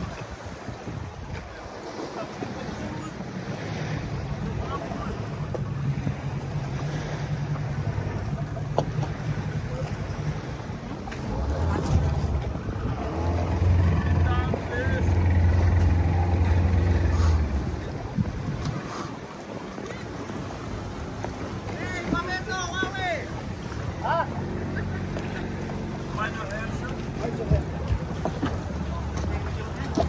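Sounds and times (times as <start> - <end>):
wind noise: 0.0 - 1.8, 16.2 - 19.8
outboard motor humming: 0.0 - 30.0
water: 0.0 - 30.0.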